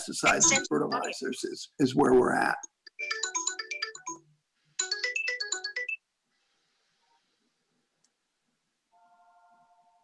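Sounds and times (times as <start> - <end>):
phone ringtone melody: 0.3 - 1.2, 2.9 - 6.0.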